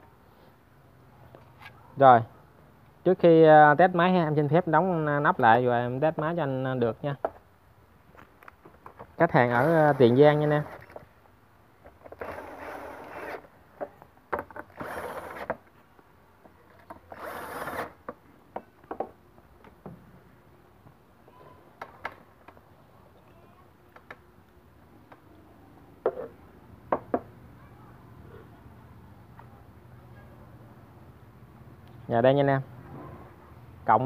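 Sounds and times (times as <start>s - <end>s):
cordless drill driving screws: 17.1s - 17.9s.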